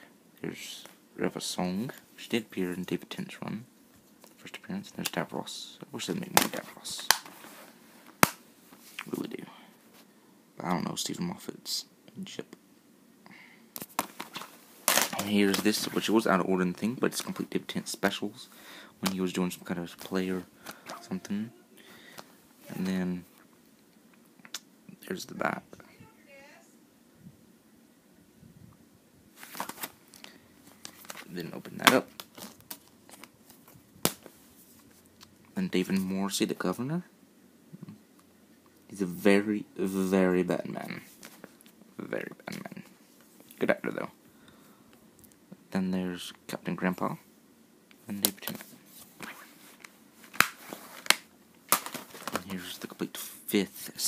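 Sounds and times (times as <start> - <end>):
faint handling noise: 6.2 - 10.1, 13.7 - 24.4, 28.7 - 36.6, 40.6 - 44.1, 47.9 - 54.0
plastic case snapping open: 50.3 - 52.4.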